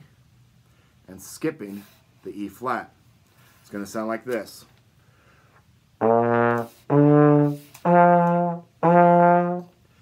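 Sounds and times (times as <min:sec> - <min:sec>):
plastic trombone held notes: 0:06.0 - 0:09.8.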